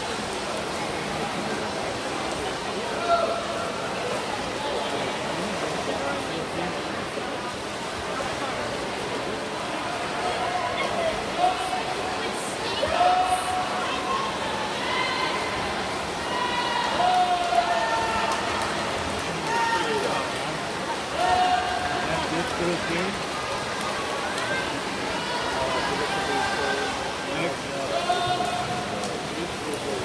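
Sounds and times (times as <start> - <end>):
crowd hubbub: 0.0 - 30.0
swimmers splashing: 0.0 - 30.0
spectators shouting encouragement: 12.6 - 20.3, 21.0 - 22.8.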